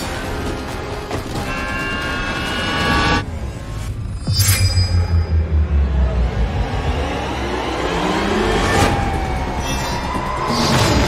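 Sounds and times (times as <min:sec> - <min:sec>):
rush of noise: 0:02.5 - 0:09.1.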